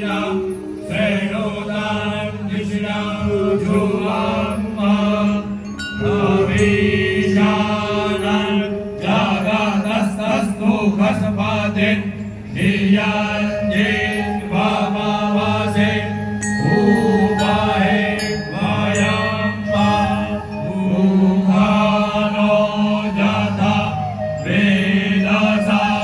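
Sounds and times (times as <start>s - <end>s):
men chanting into microphones: 0.0s - 26.0s
steady low drone: 0.0s - 26.0s.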